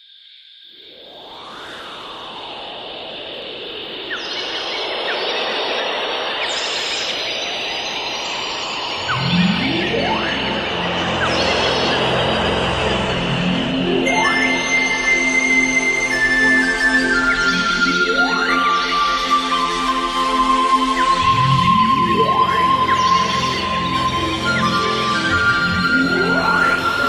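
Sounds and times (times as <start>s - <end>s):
deep sustained notes: 9.0s - 27.0s.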